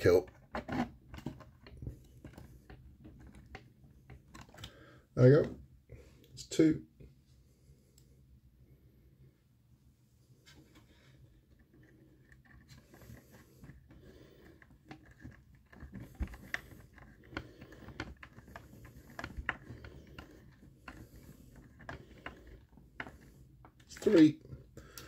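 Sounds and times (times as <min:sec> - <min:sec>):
handling hard plastic parts: 0:00.1 - 0:05.6, 0:10.5 - 0:25.0.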